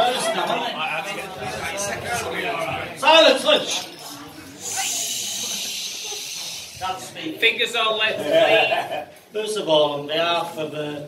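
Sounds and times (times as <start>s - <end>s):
person hushing: 4.4s - 6.8s.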